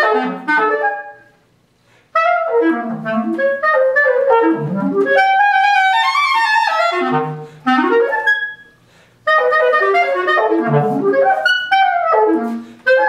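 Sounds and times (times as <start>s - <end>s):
clarinet playing fast runs: 0.0s - 1.3s, 2.2s - 13.0s.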